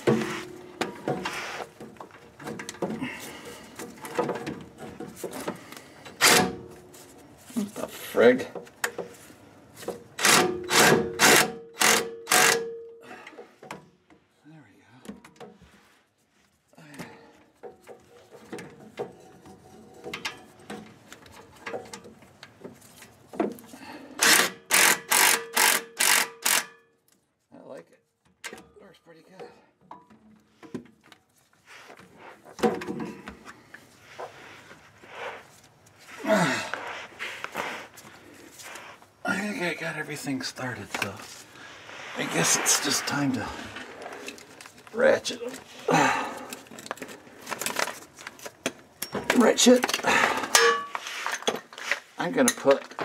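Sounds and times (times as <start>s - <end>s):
power ratchet whining: 10.2s - 12.7s, 24.2s - 26.7s.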